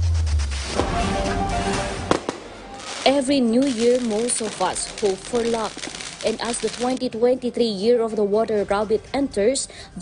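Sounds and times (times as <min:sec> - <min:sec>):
fireworks bangs: 0:00.5 - 0:07.0
crackling haze: 0:02.1 - 0:07.0.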